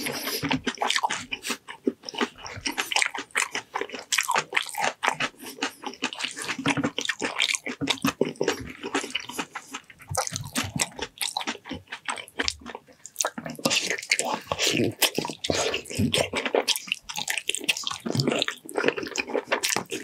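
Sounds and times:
wet chewing: 0.0s - 20.0s.

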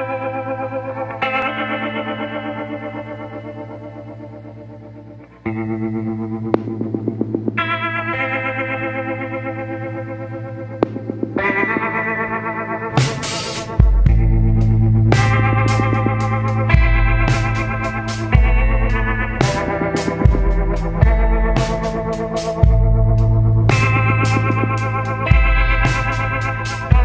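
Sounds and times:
effects-heavy ambient chords: 0.0s - 27.0s
sharp hit: 10.8s - 22.0s.

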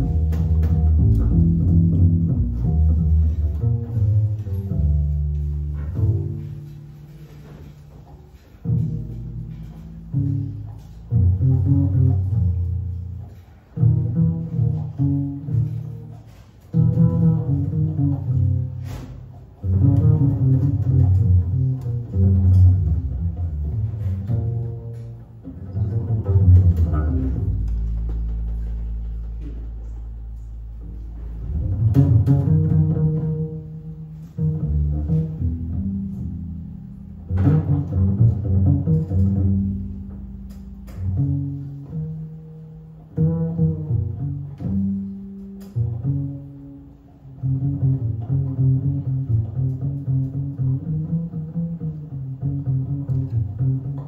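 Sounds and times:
double bass plucked pizzicato: 0.0s - 54.0s.

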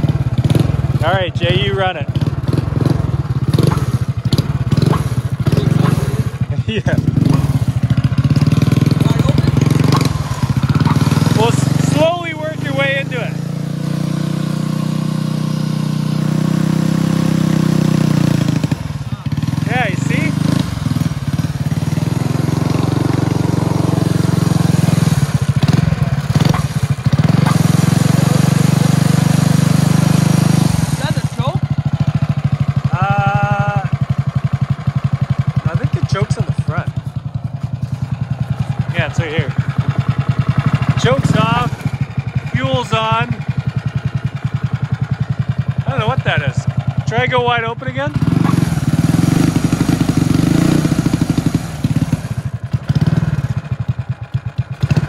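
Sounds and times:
small gas engine running: 0.0s - 55.0s.

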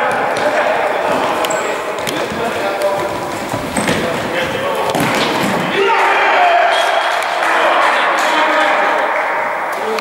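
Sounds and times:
players' voices: 0.0s - 10.0s
shoe squeak: 1.4s - 2.2s, 2.9s - 4.3s
ball kicked on indoor court: 3.0s - 5.7s.

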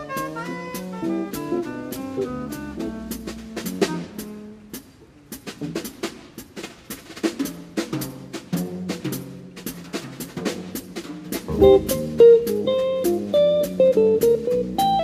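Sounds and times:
walking bass line: 0.0s - 4.4s, 11.5s - 15.0s
snare drum hits: 0.0s - 4.9s, 5.5s - 14.9s
bass drum: 0.0s - 6.2s, 6.9s - 15.0s
cymbals: 0.0s - 15.0s
jazz combo playing: 0.0s - 15.0s.

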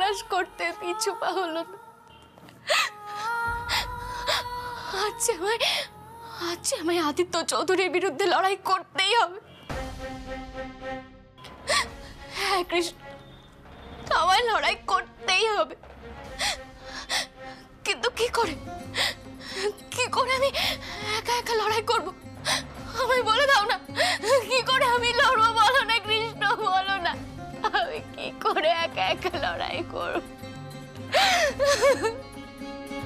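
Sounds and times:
woman sobbing: 2.7s - 6.7s, 23.6s - 24.7s, 31.0s - 32.4s
dramatic background music: 3.0s - 7.4s, 9.6s - 33.0s.

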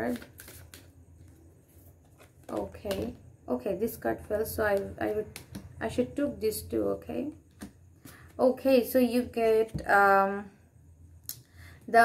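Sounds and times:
cards being shuffled: 0.0s - 3.2s.

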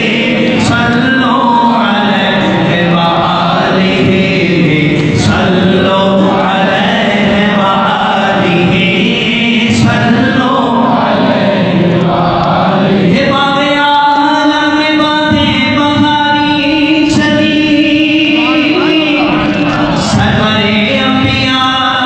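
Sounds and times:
group chanting in unison: 0.0s - 13.6s, 18.2s - 22.0s.

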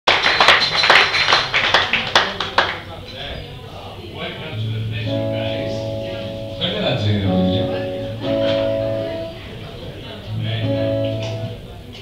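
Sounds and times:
audience applauding: 0.1s - 2.9s.

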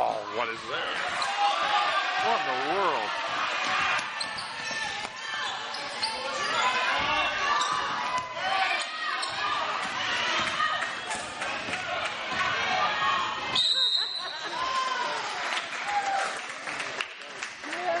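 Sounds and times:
spectators' voices echoing: 0.0s - 13.6s
referee's whistle: 13.5s - 14.4s.

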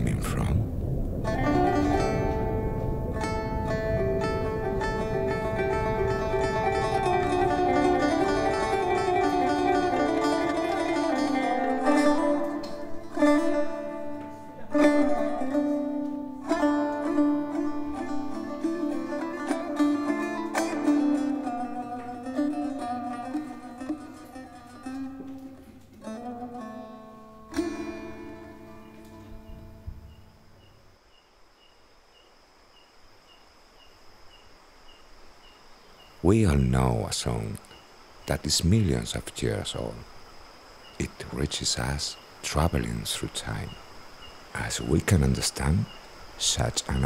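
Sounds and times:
low rumble: 0.0s - 9.1s
plucked string instrument: 1.2s - 30.1s.

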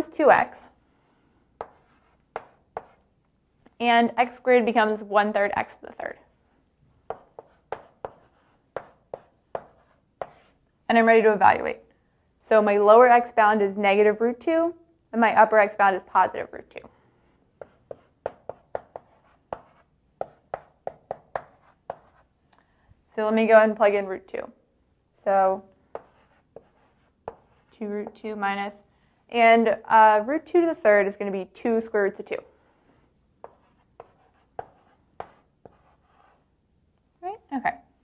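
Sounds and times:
chalk tapping and scraping on blackboard: 1.6s - 3.1s, 7.1s - 10.6s, 17.6s - 22.3s, 25.9s - 28.3s, 33.4s - 36.5s.

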